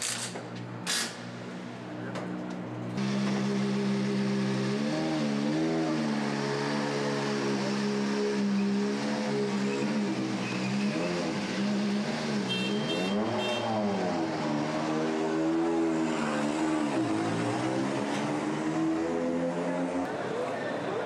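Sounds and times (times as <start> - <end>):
rally car engine revving: 3.0 - 20.1.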